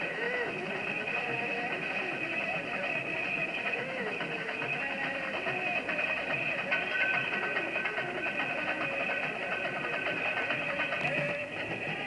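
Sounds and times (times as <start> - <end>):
person singing: 0.0 - 12.0.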